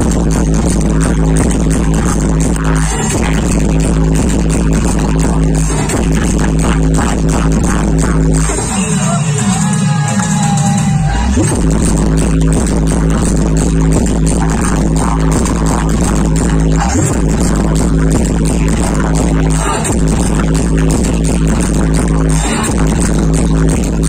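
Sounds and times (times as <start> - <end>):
electronic dance music: 0.0 - 24.0
heavy bass beat: 0.0 - 24.0.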